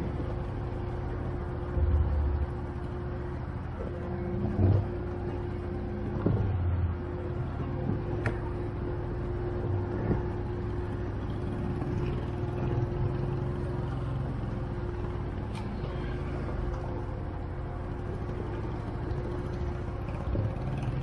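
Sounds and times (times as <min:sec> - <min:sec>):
atv engine running: 0:00.0 - 0:21.0
steady whine: 0:00.0 - 0:21.0.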